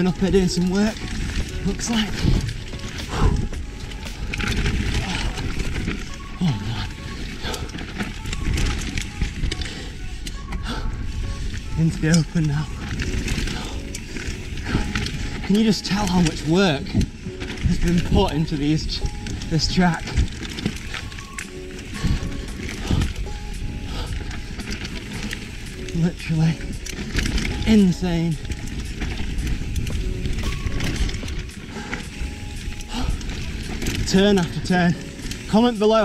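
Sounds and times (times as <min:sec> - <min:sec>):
bike rattling: 0:00.0 - 0:36.0
bike tyre and wind noise: 0:00.0 - 0:36.0.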